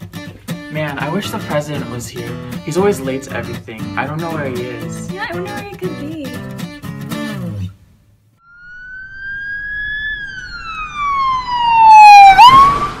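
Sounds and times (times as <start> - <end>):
wailing siren: 8.4 - 13.0.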